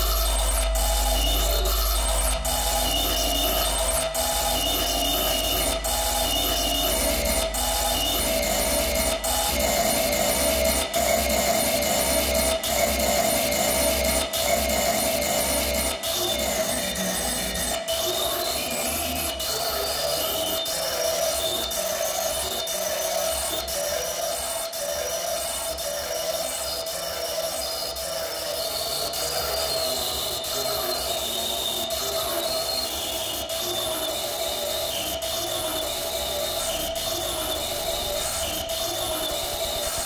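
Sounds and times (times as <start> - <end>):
electronic drone: 0.0 - 24.2, 32.1 - 40.0.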